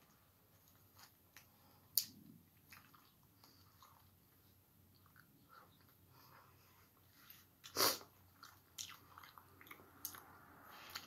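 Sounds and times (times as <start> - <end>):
chewing: 0.0 - 11.0.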